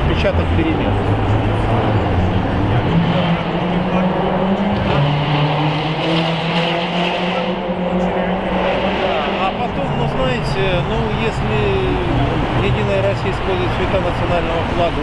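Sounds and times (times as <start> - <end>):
crowd voices: 0.0 - 15.0
vehicle engine hum: 0.0 - 15.0.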